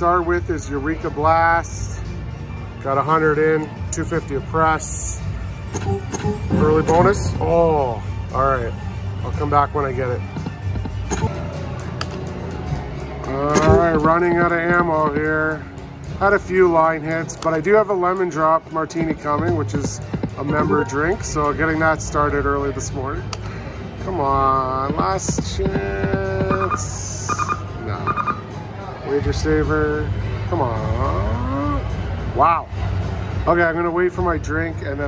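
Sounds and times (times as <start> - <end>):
casino background hum: 2.6 - 29.3
slot machine game music: 5.8 - 7.9, 10.5 - 22.0, 26.4 - 28.5
slot machine beeping chimes: 20.5 - 21.4, 26.5 - 28.5.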